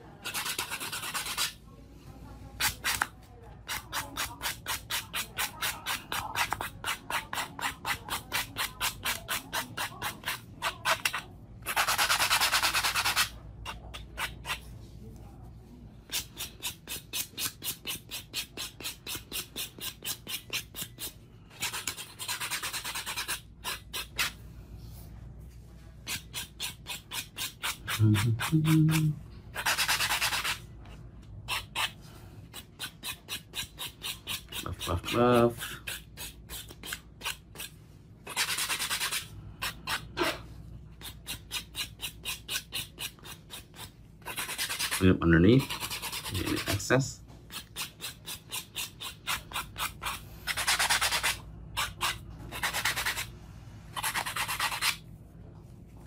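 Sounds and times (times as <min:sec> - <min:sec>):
nail buffing block rubbing: 0:00.2 - 0:01.6, 0:03.7 - 0:14.6, 0:16.1 - 0:24.4, 0:26.0 - 0:30.6, 0:31.5 - 0:40.2, 0:41.0 - 0:46.8, 0:47.5 - 0:53.3, 0:54.0 - 0:55.0.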